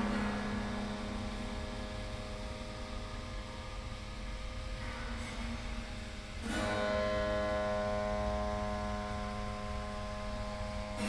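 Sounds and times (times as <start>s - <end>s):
piano strings ringing: 0.0s - 3.6s
low steady hum: 0.0s - 11.0s.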